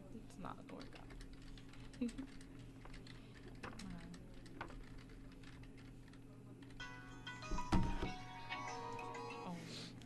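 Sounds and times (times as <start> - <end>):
computer keyboard typing: 0.6 - 6.8.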